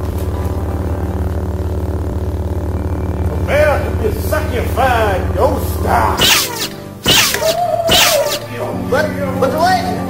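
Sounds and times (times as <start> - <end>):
pulsing electric buzzing hum: 0.0 - 10.0.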